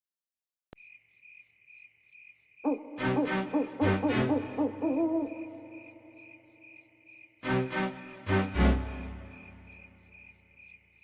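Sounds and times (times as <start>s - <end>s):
pulsing high chirp: 2.7s - 6.2s
wavering hoot-like tones: 2.7s - 6.4s.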